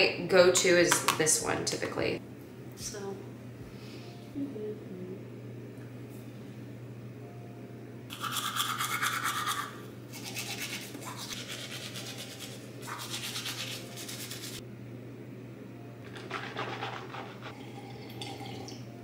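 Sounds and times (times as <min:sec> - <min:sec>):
toothbrush scrubbing teeth: 0:08.1 - 0:14.6, 0:16.1 - 0:17.6.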